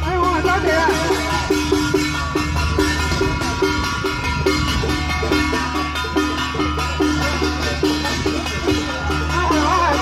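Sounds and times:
hand gongs and cymbals beaten: 0:00.0 - 0:10.0.

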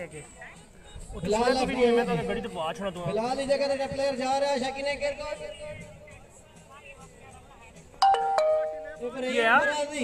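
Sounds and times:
electronic doorbell chime: 0:08.0 - 0:09.0.

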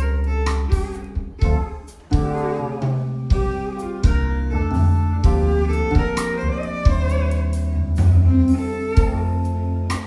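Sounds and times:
jazz band playing live: 0:00.0 - 0:10.0.

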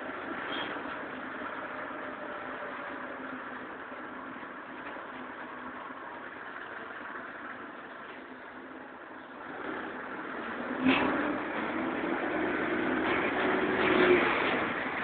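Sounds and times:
bus engine running: 0:00.0 - 0:15.0.

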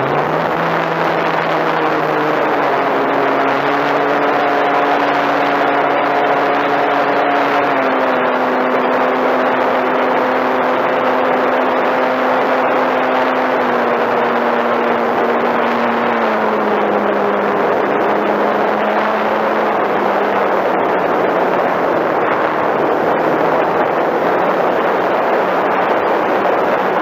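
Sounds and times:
model airplane motor whine: 0:00.0 - 0:27.0
wind on microphone: 0:00.0 - 0:27.0.

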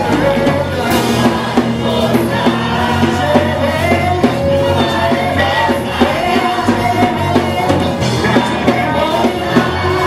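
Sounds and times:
band with steady drum beat: 0:00.0 - 0:10.0
vocal group singing gospel: 0:00.0 - 0:10.0.

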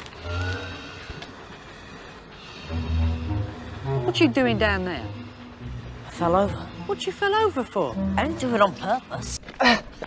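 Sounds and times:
faint background music: 0:00.3 - 0:09.9.

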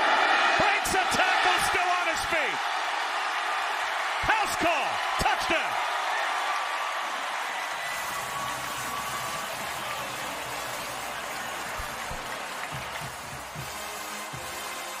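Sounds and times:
stadium crowd cheering and applauding: 0:00.0 - 0:15.0.

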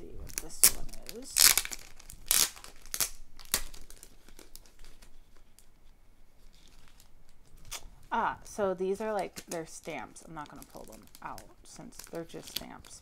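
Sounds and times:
plastic packaging crinkling: 0:00.0 - 0:13.0.

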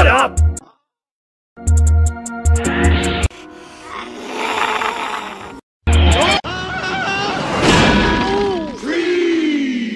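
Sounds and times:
cartoon character growling: 0:03.8 - 0:05.6.

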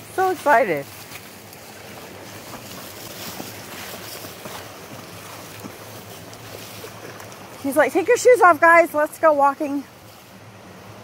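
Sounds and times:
stream rushing: 0:00.0 - 0:11.0
dog splashing in water: 0:00.2 - 0:08.6.

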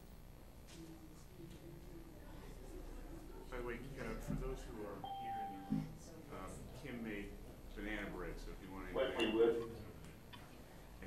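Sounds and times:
people talking: 0:00.7 - 0:10.8
short electronic beep: 0:05.1 - 0:05.9.

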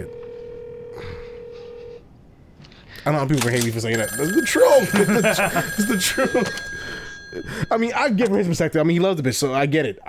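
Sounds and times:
steady telephone line tone: 0:00.0 - 0:02.0, 0:03.9 - 0:08.4.

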